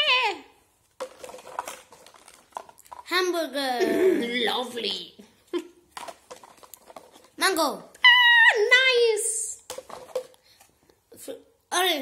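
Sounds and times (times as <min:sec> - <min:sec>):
toys rummaged in a box: 0:01.0 - 0:03.2, 0:06.0 - 0:07.7.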